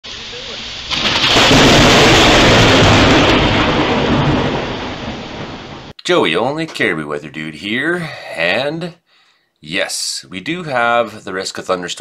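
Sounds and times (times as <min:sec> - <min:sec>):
steady rain: 0:00.1 - 0:06.0
loud thunderclap rumbling: 0:00.6 - 0:06.0.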